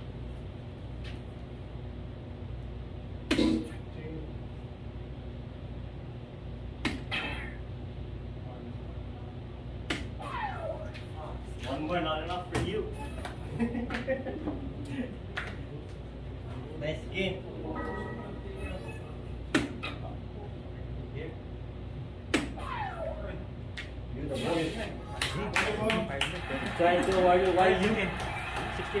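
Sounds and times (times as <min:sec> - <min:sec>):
low background hum: 0:00.0 - 0:29.0
dart hitting electronic dartboard: 0:03.3 - 0:03.6, 0:06.8 - 0:07.3, 0:19.5 - 0:20.0
sharp snap: 0:03.3 - 0:03.6, 0:06.8 - 0:07.2, 0:09.8 - 0:10.2, 0:22.3 - 0:22.6.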